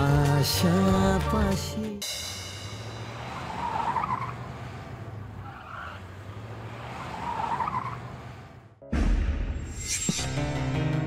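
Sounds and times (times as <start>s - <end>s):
car engines humming: 0.0s - 8.8s
tyre noise on paving: 3.1s - 8.7s.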